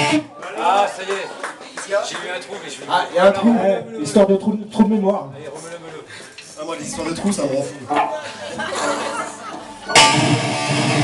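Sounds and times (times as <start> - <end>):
people talking: 0.6 - 9.6
bass guitar: 7.9 - 11.0
electric guitar: 7.9 - 11.0
live rock band: 7.9 - 11.0.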